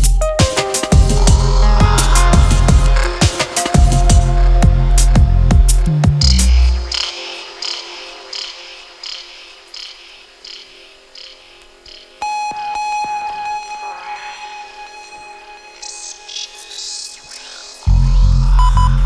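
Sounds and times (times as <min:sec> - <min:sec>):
held electronic tone: 0:12.2 - 0:17.6.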